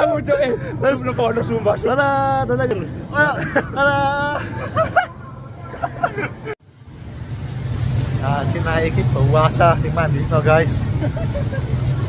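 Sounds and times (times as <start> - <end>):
man talking: 0.0 - 4.8, 8.2 - 11.0.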